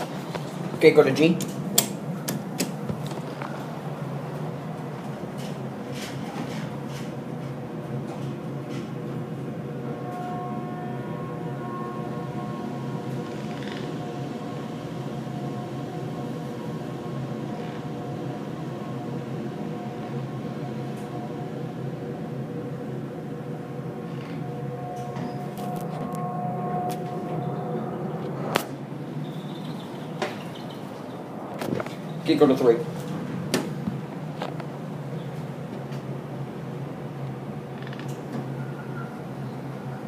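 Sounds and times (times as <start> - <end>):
elevator machinery hum and whine: 0.0 - 40.0.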